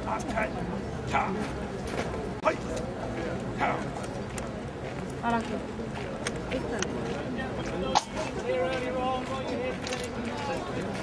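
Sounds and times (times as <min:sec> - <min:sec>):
murmur of voices outdoors: 0:00.0 - 0:11.0.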